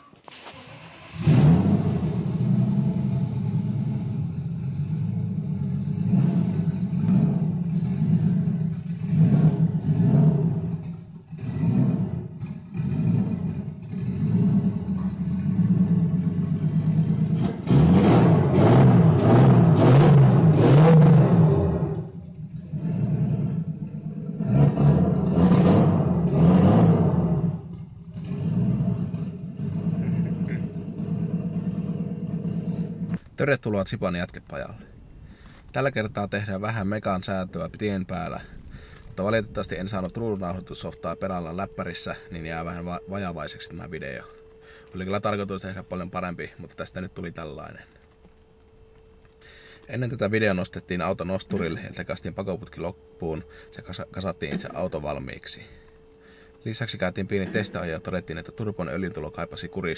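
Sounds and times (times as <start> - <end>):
car engine revving: 0.3 - 33.3.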